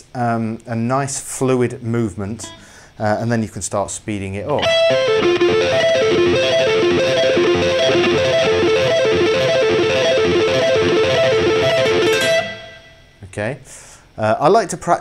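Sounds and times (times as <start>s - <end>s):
electric guitar arpeggio: 2.4s - 2.8s, 4.5s - 13.1s.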